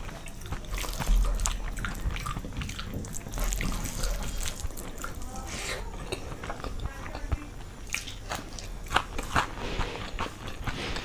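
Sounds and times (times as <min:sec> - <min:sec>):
close chewing with crisp crunches: 0:00.0 - 0:11.0.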